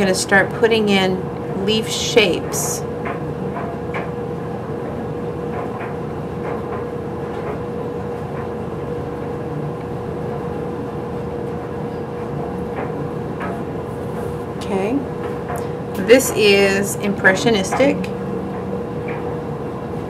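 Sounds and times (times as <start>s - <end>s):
mechanical hum: 0.0s - 20.0s
mid-pitched whine: 0.0s - 20.0s.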